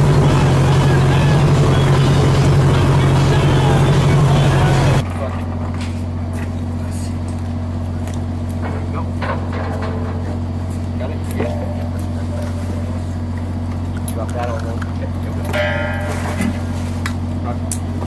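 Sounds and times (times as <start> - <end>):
ship engine humming: 0.0 - 5.1, 10.2 - 18.0
machinery hum: 0.0 - 18.0.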